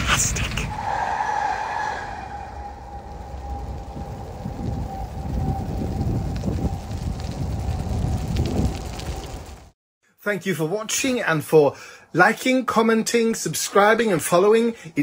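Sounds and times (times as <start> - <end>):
low outdoor rumble: 0.0 - 9.7.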